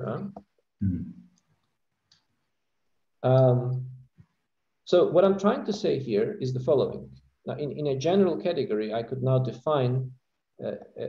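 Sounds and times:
person murmuring mm: 0.8s - 1.1s.

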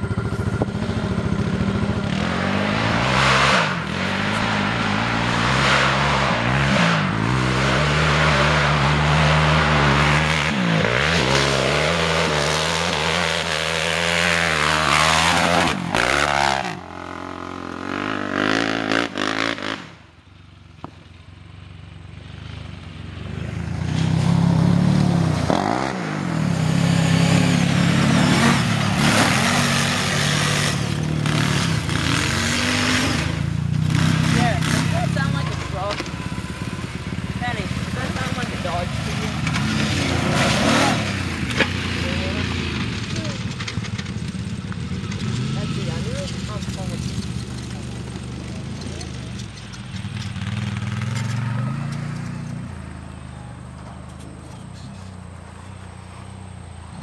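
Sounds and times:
atv engines revving: 0.0s - 57.0s.

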